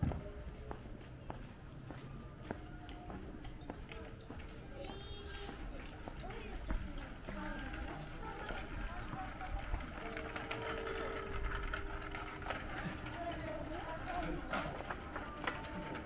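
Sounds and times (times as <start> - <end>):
footsteps on pavement: 0.0 - 10.7
passers-by talking: 0.0 - 16.0.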